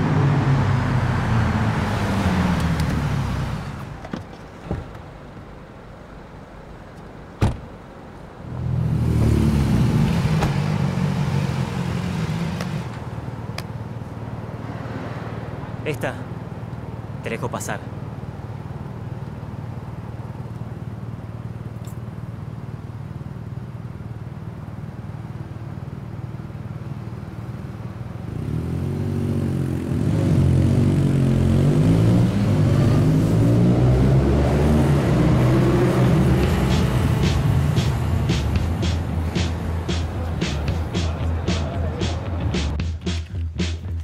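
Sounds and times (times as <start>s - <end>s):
car and motorcycle engines revving: 0.0s - 4.0s, 8.4s - 16.1s, 28.2s - 42.8s.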